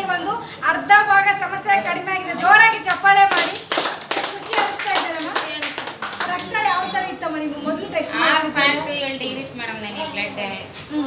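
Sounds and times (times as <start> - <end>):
hands clapping: 2.8 - 6.6.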